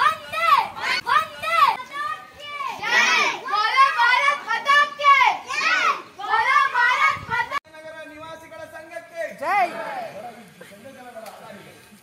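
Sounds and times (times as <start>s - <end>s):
children chanting: 2.4s - 7.2s.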